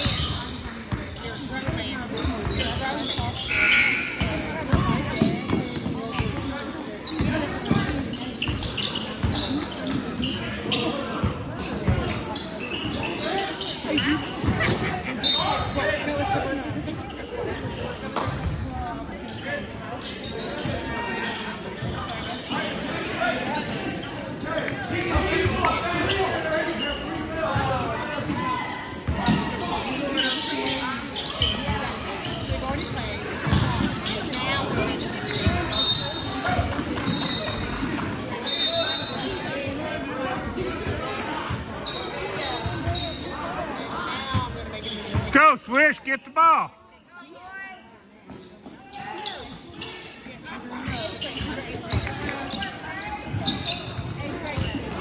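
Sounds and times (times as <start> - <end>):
babble of voices: 0.0 - 45.3.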